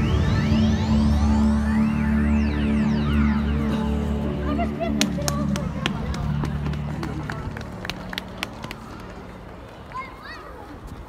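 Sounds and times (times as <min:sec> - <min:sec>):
low sustained music: 0:00.0 - 0:09.9
outdoor crowd murmur: 0:00.0 - 0:11.0.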